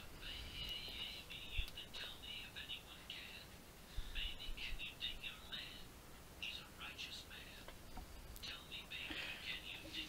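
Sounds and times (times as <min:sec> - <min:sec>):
faint whispering voice: 0:00.2 - 0:07.8, 0:08.4 - 0:10.0.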